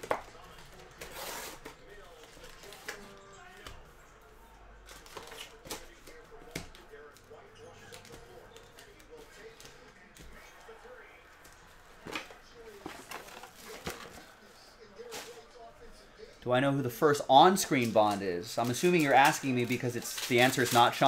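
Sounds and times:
cardboard and foil wrappers rustling: 0:00.0 - 0:03.7, 0:04.8 - 0:06.8, 0:11.4 - 0:14.4, 0:15.0 - 0:15.6, 0:17.4 - 0:21.0.

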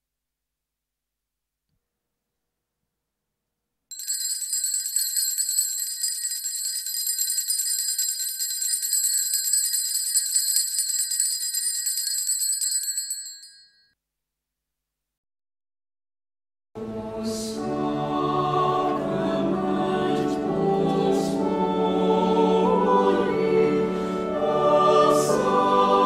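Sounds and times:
small hand bells ringing: 0:03.9 - 0:13.8.

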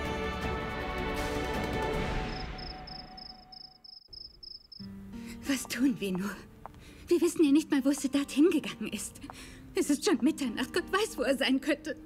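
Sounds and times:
music: 0:00.0 - 0:03.5, 0:04.8 - 0:12.0
crickets chirping: 0:02.1 - 0:05.0
low steady music tone: 0:04.8 - 0:12.0.

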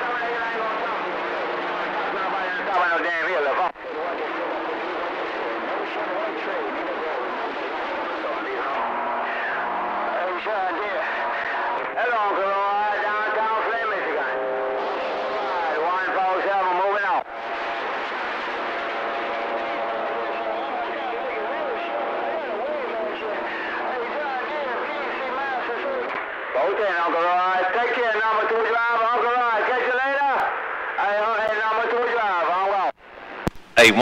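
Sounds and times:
garbled radio voices: 0:19.9 - 0:32.9, 0:33.7 - 0:34.0.

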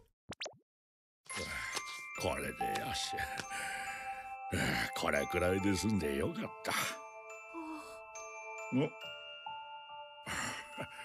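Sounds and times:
soft background music: 0:01.3 - 0:11.0.

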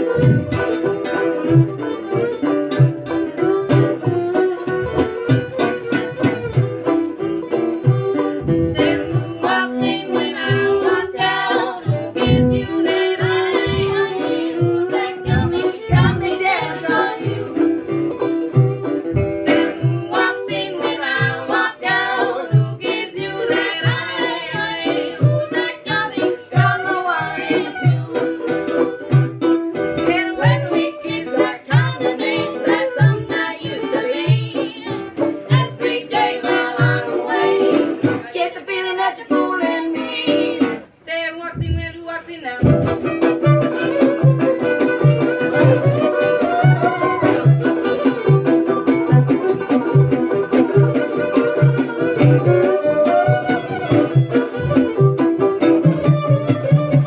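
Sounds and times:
strummed guitar: 0:00.0 - 0:41.0, 0:41.6 - 0:57.0
banjo: 0:00.0 - 0:57.0
fiddle melody: 0:00.0 - 0:57.0
washtub bass thumping: 0:00.1 - 0:01.7, 0:10.5 - 0:18.1, 0:42.6 - 0:43.3
woman singing: 0:08.4 - 0:18.0, 0:19.3 - 0:28.6, 0:29.9 - 0:49.2.

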